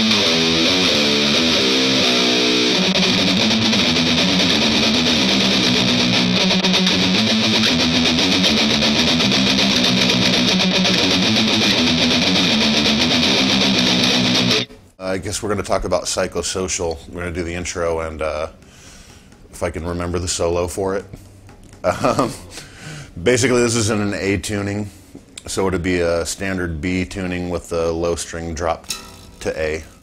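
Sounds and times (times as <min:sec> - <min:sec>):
distorted electric guitar riff: 0:00.0 - 0:14.7.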